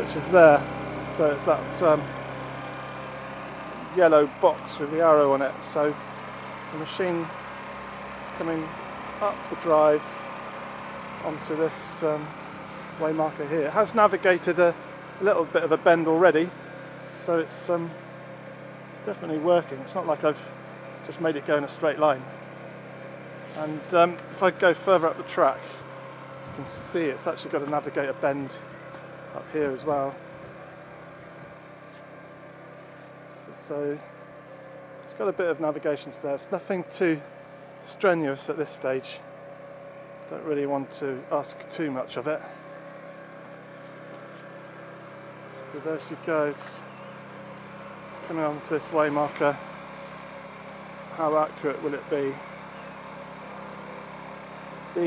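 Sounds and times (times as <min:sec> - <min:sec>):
electric motors humming: 0:00.0 - 0:55.0.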